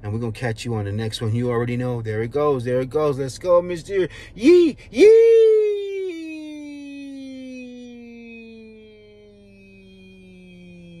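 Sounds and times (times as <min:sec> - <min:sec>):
man's long drawn-out call: 0:05.0 - 0:11.0.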